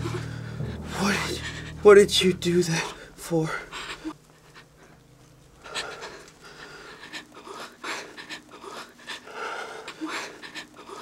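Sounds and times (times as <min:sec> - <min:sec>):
person panting: 0:05.6 - 0:11.0.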